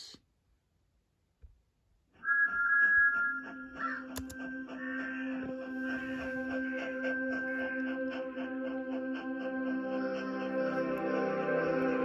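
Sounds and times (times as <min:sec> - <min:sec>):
sombre music: 0:02.2 - 0:12.0
low steady note: 0:03.0 - 0:12.0.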